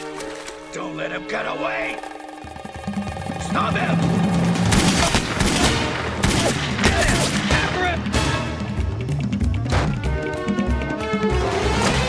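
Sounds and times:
guns firing quick shots: 4.7 - 7.5.

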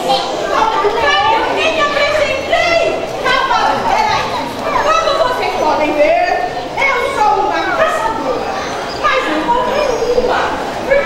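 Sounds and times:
crowd of children talking: 0.0 - 11.0.

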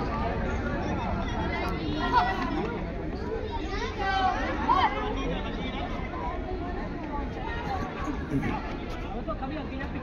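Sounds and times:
chatter of voices: 0.0 - 10.0.

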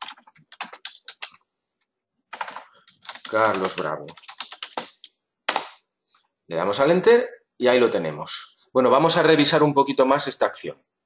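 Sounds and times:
keyboard typing: 0.0 - 1.4, 2.3 - 5.8.

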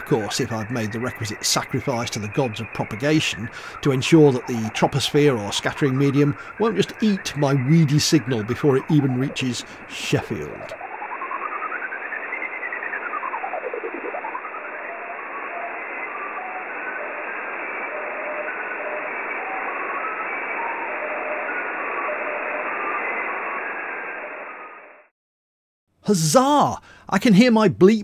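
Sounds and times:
gliding radio whistle: 0.0 - 25.1
receiver hiss: 0.0 - 25.1.

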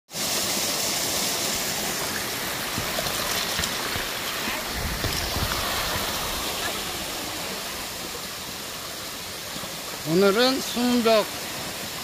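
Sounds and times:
stream water rushing: 0.1 - 12.0.

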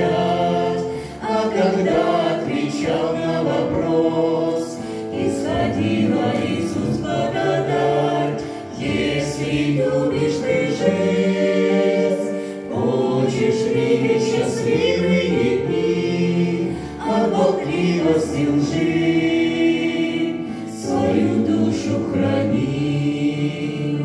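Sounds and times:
group singing a hymn: 0.0 - 24.0
piano accompaniment: 0.0 - 24.0.

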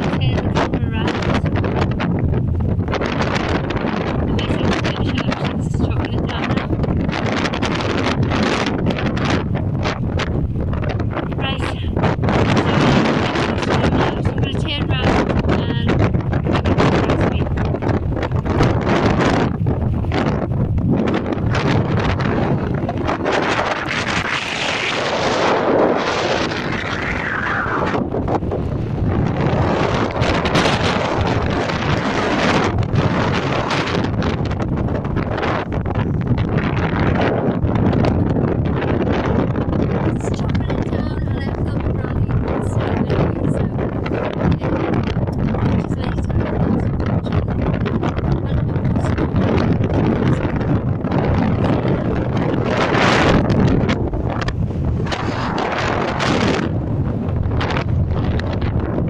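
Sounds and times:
gusty wind on microphone: 0.0 - 59.0.

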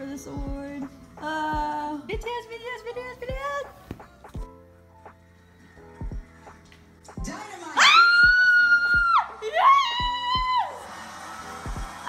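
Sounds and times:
tv broadcast audio: 0.0 - 12.0.

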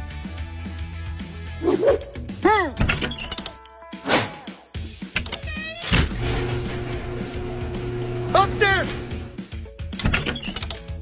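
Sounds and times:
background music: 0.0 - 11.0
dog barking: 1.6 - 2.1.

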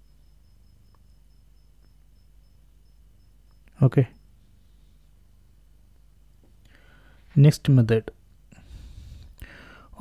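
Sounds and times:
person breathing: 6.6 - 7.4, 8.5 - 10.0.

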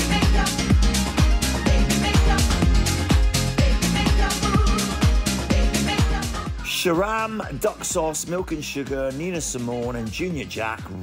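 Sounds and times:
house music: 0.0 - 11.0
kick drum beat: 0.2 - 11.0.

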